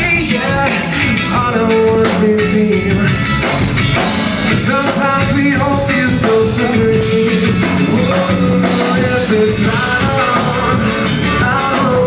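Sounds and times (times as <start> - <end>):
drums: 0.0 - 12.0
electric guitars: 0.0 - 12.0.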